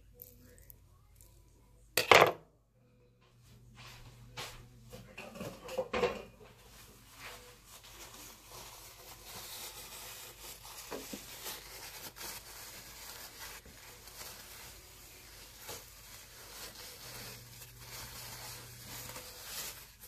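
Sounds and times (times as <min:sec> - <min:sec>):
soft crinkling and rubbing: 0:03.2 - 0:20.0.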